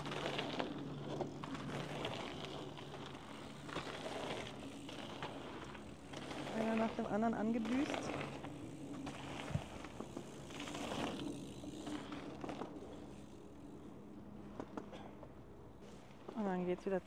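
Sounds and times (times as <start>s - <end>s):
bike tyres rolling on dirt: 0.0s - 16.7s.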